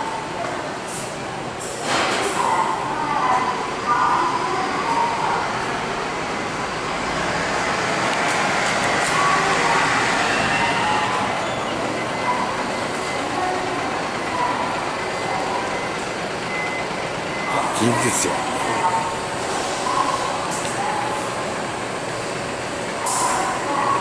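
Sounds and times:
bus engine running: 0.0s - 24.0s.

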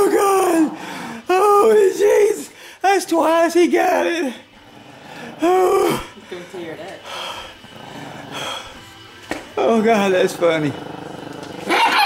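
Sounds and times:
breathy rush: 0.5s - 1.6s, 4.2s - 9.1s
small dog growling: 4.6s - 6.2s, 7.1s - 8.8s, 10.2s - 12.0s.

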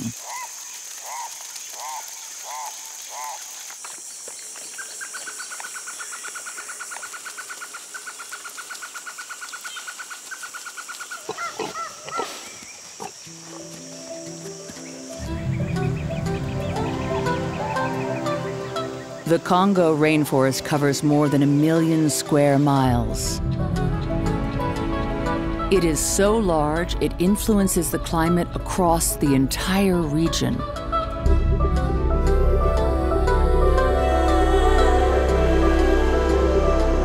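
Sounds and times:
high insect whine: 0.0s - 19.3s.

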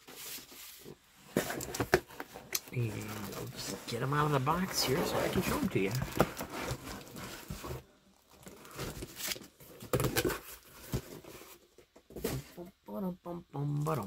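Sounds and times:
plastic bags rustling: 0.0s - 11.5s
knocks and crinkles: 0.0s - 12.6s.

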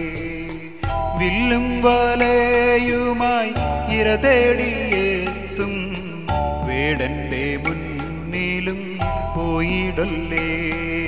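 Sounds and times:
percussion strikes: 0.0s - 11.0s
stage song with melody: 0.0s - 11.0s
steady bass: 0.0s - 11.0s.

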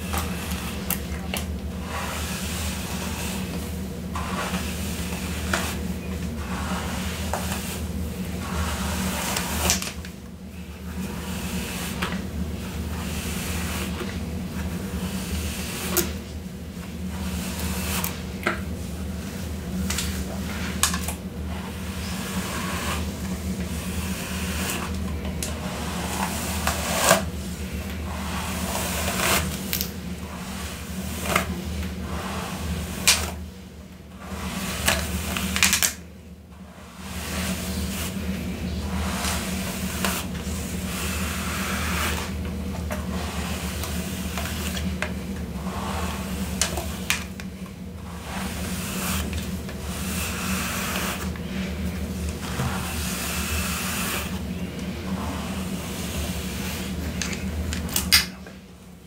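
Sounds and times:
steady low hum: 0.0s - 59.0s
hairbrush swishing through hair: 1.8s - 10.0s, 10.9s - 33.4s, 36.6s - 47.4s, 48.0s - 57.5s.

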